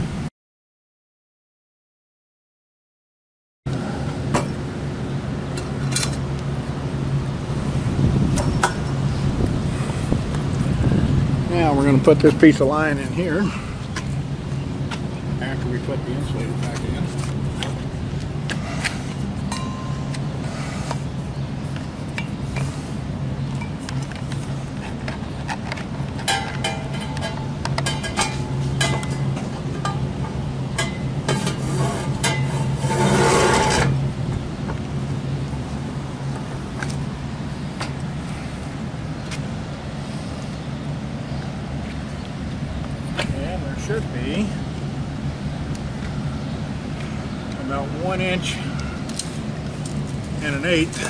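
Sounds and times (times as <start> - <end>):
steady low hum: 3.7 - 51.0
metal scraping rush: 26.3 - 34.2.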